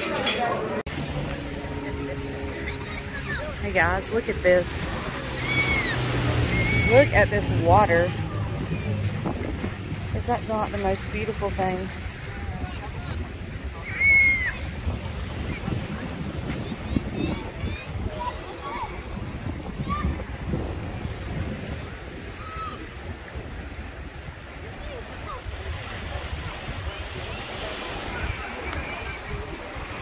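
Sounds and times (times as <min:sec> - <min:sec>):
small sea waves on shore: 0:00.0 - 0:30.0
wind buffeting microphone: 0:00.9 - 0:30.0.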